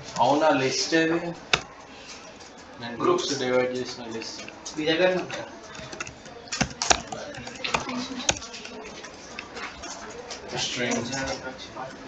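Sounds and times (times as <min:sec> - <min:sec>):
computer keyboard keystrokes: 0:01.5 - 0:01.8, 0:05.7 - 0:09.4.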